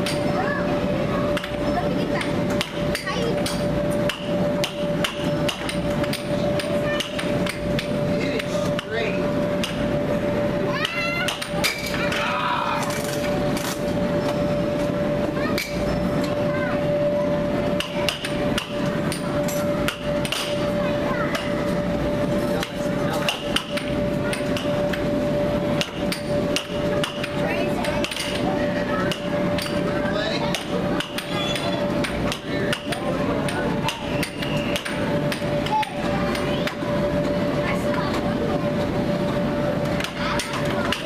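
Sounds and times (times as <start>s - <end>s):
steady hum: 0.0s - 41.0s.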